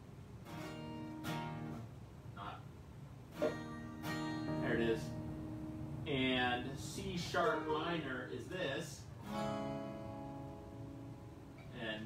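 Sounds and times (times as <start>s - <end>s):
acoustic guitar chord strummed: 0.4s - 2.5s, 3.3s - 8.0s, 9.2s - 12.0s.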